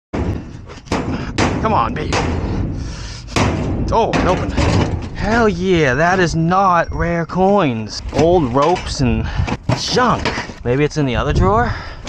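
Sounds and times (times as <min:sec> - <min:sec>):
metal drawer banging: 0:00.1 - 0:05.9, 0:08.0 - 0:10.6
metal drawer scraping: 0:00.2 - 0:05.9, 0:07.9 - 0:10.6.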